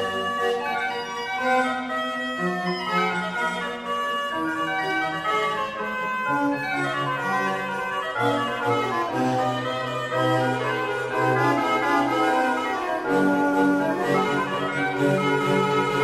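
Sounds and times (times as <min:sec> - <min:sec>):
organ with small orchestra: 0:00.0 - 0:16.0.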